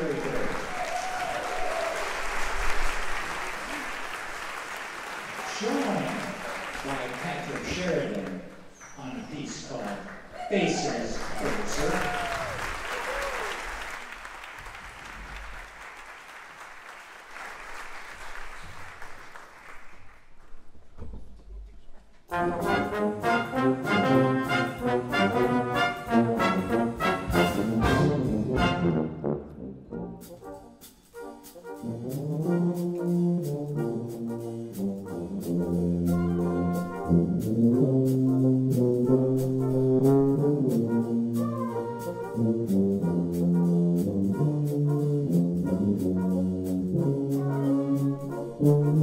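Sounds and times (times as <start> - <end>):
applause: 0.0 - 20.8
brass band playing chords: 22.3 - 49.0
low tuba notes: 22.3 - 49.0.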